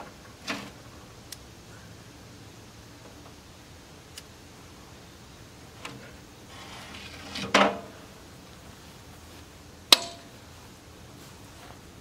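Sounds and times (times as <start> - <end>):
sharp metal clank: 9.9 - 10.3.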